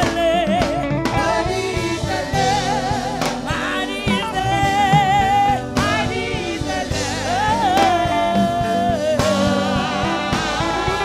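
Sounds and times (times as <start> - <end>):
gospel band playing: 0.0 - 11.0
woman singing with vibrato: 0.0 - 11.0.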